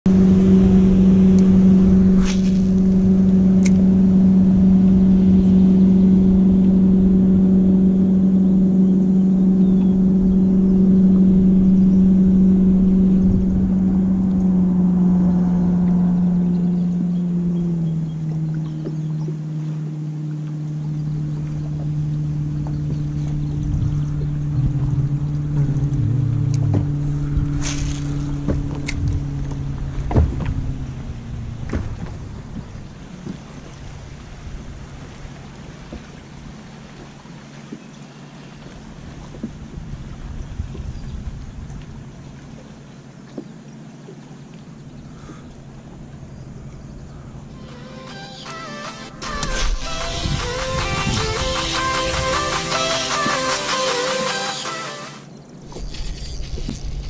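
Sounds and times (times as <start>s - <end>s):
small boat motor running: 0.0s - 57.0s.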